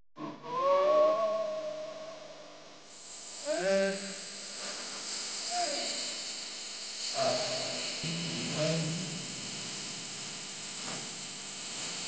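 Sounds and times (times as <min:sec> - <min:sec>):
steady hiss: 0:02.8 - 0:12.0.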